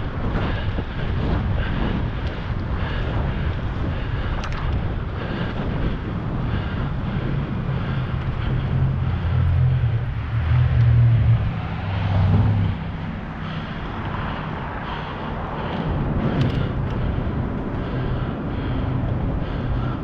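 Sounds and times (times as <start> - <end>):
low rumble: 0.0 - 20.0
wind rushing over microphone: 0.0 - 20.0.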